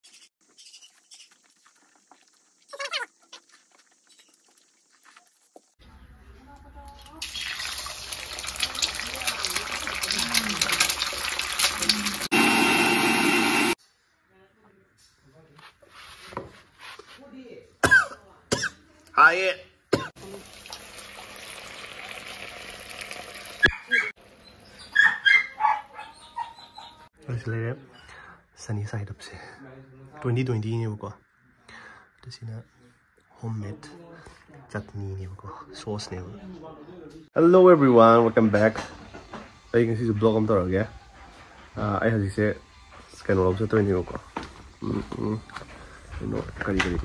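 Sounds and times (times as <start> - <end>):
sauce sizzling in hot oil: 7.2 - 13.8, 20.2 - 23.7.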